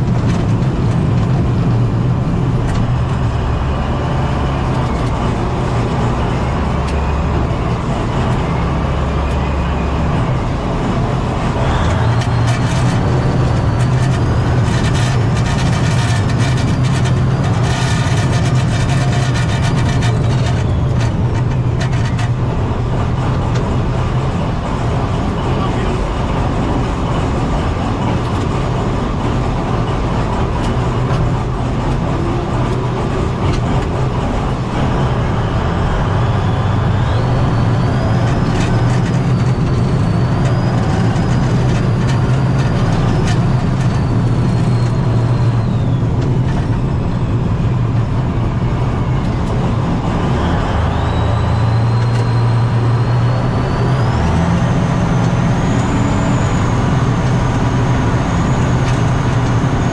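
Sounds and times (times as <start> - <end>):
tracked vehicle engine drone: 0.0 - 59.9.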